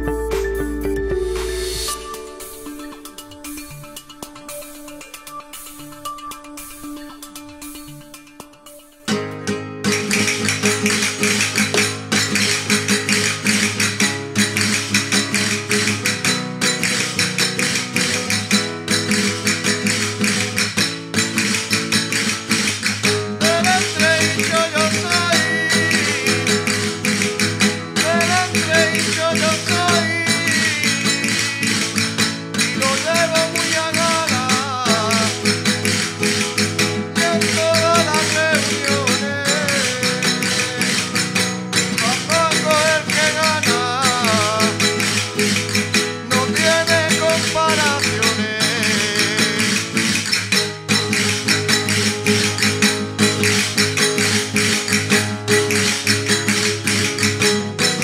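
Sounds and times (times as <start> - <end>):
melody line in short phrases: 0.0 - 6.1
folk dance guitar with percussion: 0.0 - 58.0.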